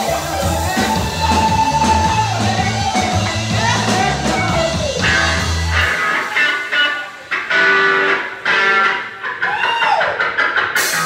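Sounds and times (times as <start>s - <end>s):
drums: 0.0s - 11.0s
electric guitar bending notes: 0.0s - 11.0s.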